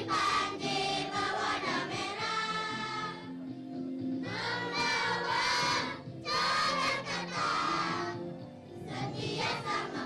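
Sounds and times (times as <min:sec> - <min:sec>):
children's choir singing: 0:00.0 - 0:03.4, 0:04.2 - 0:08.2, 0:08.9 - 0:10.0
musical accompaniment: 0:00.0 - 0:10.0.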